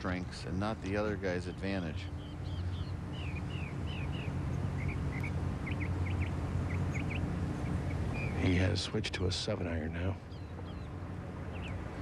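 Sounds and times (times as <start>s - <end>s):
songbird chirping: 0.0s - 12.0s
steady low hum: 0.0s - 12.0s.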